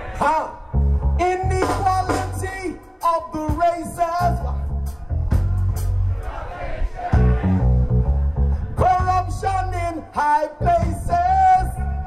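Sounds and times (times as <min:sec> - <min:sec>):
reggae band playing: 0:00.0 - 0:12.0
heavy bass line: 0:00.6 - 0:06.3, 0:07.1 - 0:12.0
man singing: 0:01.2 - 0:04.8, 0:08.7 - 0:12.0.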